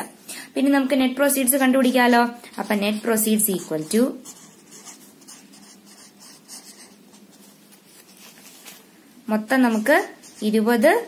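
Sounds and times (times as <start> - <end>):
felt marker scratching on paper: 2.5 - 8.8, 9.6 - 10.8.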